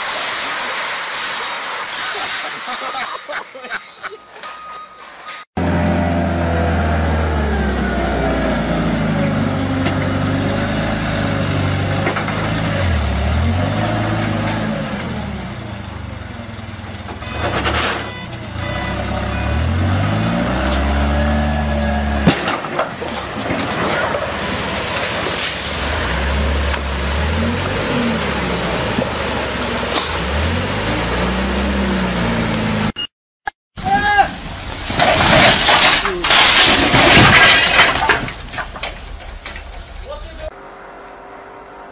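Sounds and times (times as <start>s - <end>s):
forklift engine revving: 5.6s - 22.3s, 23.2s - 33.0s.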